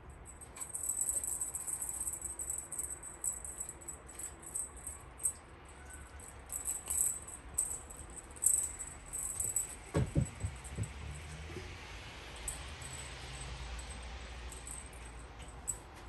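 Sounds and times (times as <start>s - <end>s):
ribbon lure rattling and jingling: 0.4s - 11.2s.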